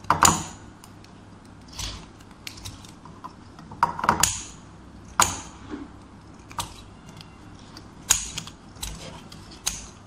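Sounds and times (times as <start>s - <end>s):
scissors snipping paper: 6.4s - 10.0s.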